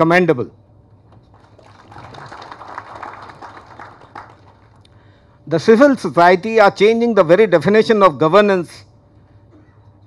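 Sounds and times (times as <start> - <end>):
audience applause: 1.3 - 4.8.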